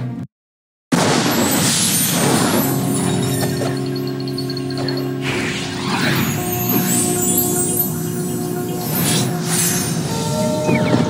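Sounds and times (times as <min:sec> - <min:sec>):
sustained music notes: 0:02.2 - 0:11.0.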